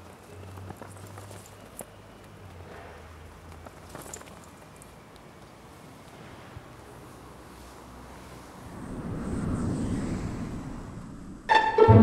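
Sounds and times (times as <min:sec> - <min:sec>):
wind rush on microphone: 0:08.5 - 0:11.6.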